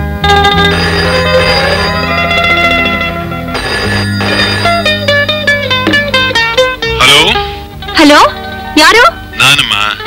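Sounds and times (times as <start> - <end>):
plucked-string melody: 0.0 - 10.0.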